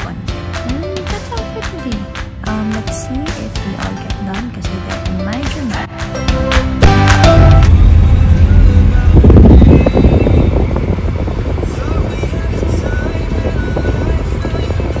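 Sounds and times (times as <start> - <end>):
road and engine rumble inside car: 7.7 - 15.0.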